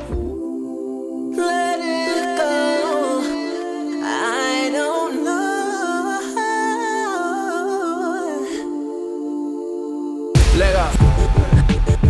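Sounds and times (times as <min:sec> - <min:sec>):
hummed vocal melody: 0:00.0 - 0:12.0
sustained harmony chords: 0:00.0 - 0:12.0.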